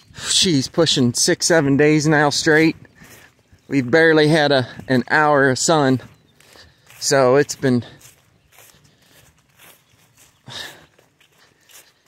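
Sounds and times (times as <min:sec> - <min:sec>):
footsteps through wet grass: 0:00.0 - 0:12.0.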